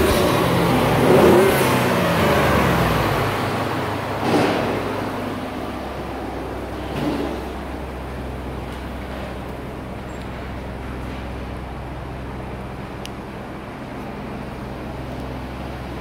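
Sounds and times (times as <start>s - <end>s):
truck engine idling: 0.0s - 16.0s.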